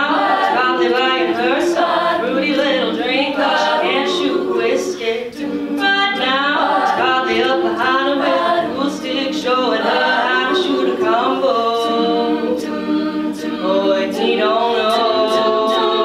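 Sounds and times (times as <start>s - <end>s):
women's vocal harmonies: 0.0s - 16.0s.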